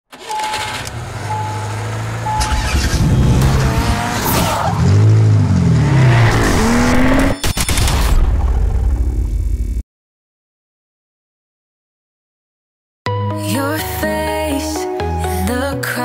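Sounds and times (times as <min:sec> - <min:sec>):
car engine revving: 0:00.1 - 0:07.4
short beeps: 0:00.3 - 0:01.7, 0:02.3 - 0:02.9.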